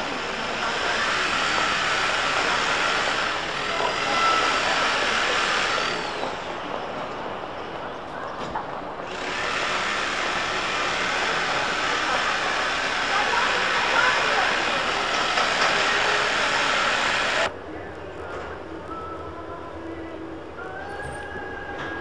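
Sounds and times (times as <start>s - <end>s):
tram rolling along track: 0.0s - 18.7s
passers-by voices: 0.0s - 22.0s.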